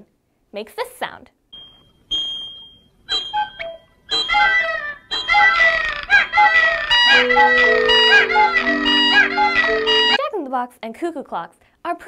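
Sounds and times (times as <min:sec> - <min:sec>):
whistles: 0:01.6 - 0:05.6
cuckoo clock calls: 0:03.1 - 0:10.2
music: 0:07.0 - 0:10.2
low held notes: 0:07.1 - 0:10.2.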